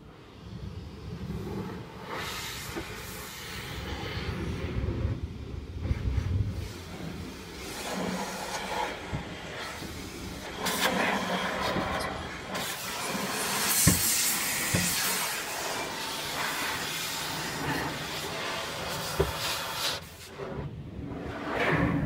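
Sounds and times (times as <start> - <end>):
car wash spray hissing: 0.1 - 20.6.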